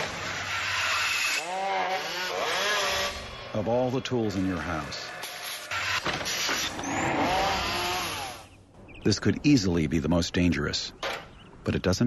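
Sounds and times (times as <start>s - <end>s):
circular saw cutting wood: 0.0s - 8.5s.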